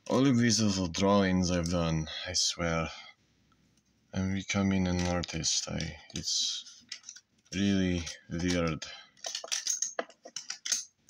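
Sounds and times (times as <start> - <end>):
hands handling papers: 4.5 - 10.8.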